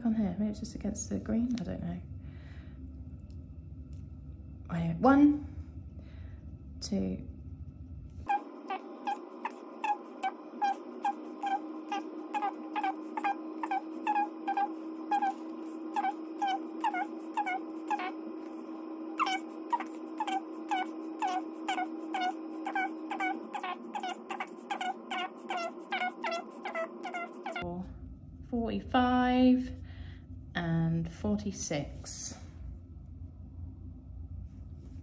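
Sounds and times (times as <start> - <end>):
low hum: 0.0 - 35.0.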